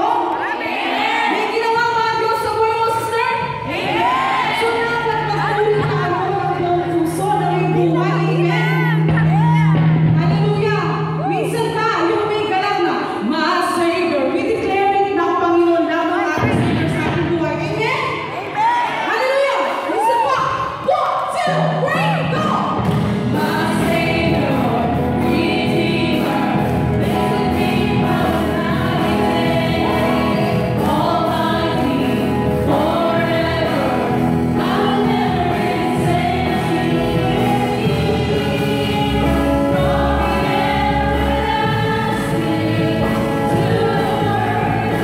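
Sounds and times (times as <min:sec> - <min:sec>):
amplified backing music: 0:01.0 - 0:18.4, 0:21.2 - 0:45.0
deep bass notes: 0:03.4 - 0:11.4, 0:21.6 - 0:45.0
woman singing into microphone: 0:21.5 - 0:45.0.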